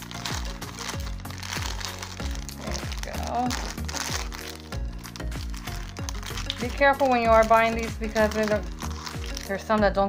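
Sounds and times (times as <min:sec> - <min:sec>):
plastic bag crinkling: 0:00.0 - 0:09.7
background music with beat: 0:00.0 - 0:10.0.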